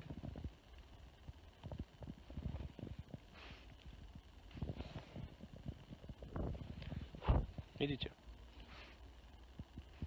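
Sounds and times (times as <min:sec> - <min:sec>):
low wind rumble: 0:00.0 - 0:08.5.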